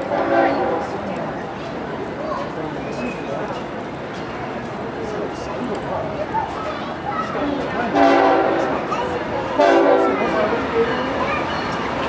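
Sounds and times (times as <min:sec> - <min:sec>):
locomotive air horn blasts: 0:00.0 - 0:01.0, 0:07.9 - 0:08.8, 0:09.6 - 0:10.3
train rumbling: 0:00.0 - 0:12.0.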